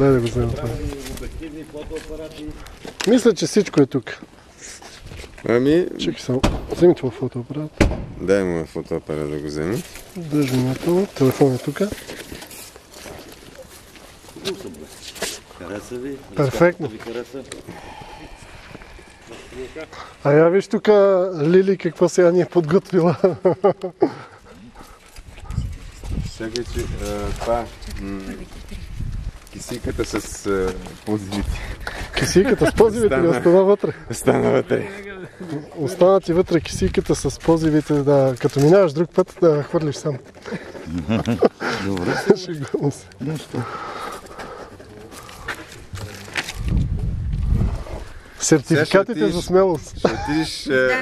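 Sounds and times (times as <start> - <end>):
voices talking quietly: 24.0 - 46.7
low rumble on microphone: 45.9 - 48.2.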